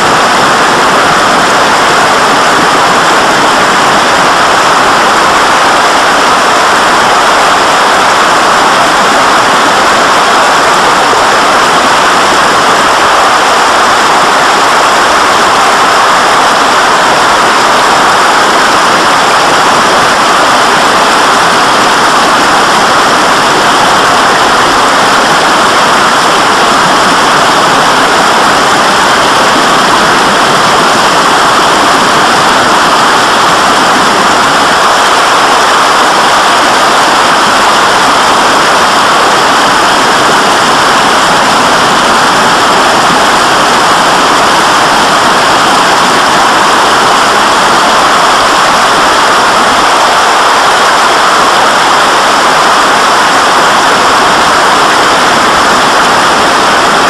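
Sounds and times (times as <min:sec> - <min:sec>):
rushing water: 0:00.0 - 0:57.0.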